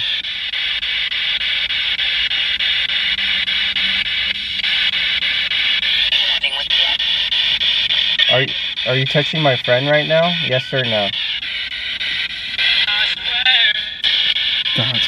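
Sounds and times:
chopped radio static hiss: 5.8 - 11.1, 12.6 - 15.0
voice fragment from radio: 6.1 - 7.0, 8.2 - 11.1, 12.7 - 14.0, 14.8 - 15.0.

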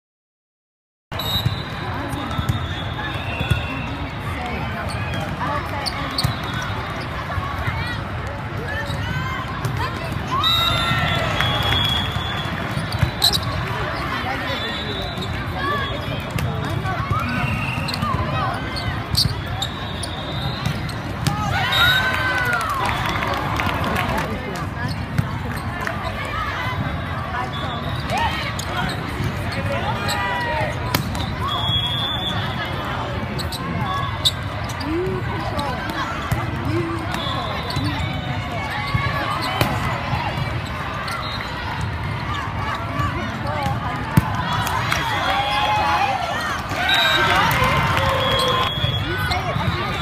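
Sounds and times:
crowd chatter in a hall: 1.2 - 50.0
players shouting: 1.5 - 24.5, 25.4 - 50.0.

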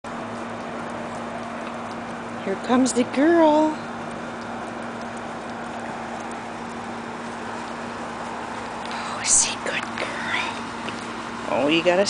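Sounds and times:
low hum: 0.1 - 11.6.

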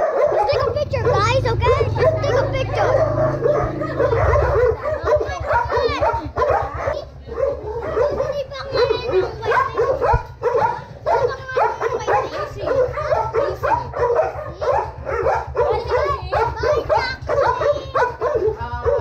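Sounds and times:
child chattering and squealing: 0.4 - 3.2, 8.1 - 10.0.

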